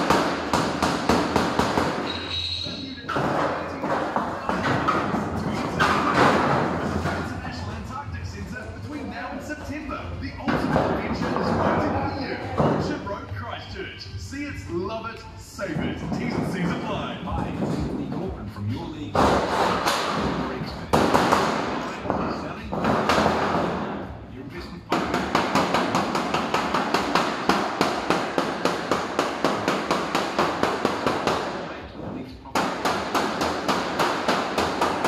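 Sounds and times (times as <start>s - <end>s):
hard knock on metal: 19.1s - 24.0s, 24.9s - 31.6s.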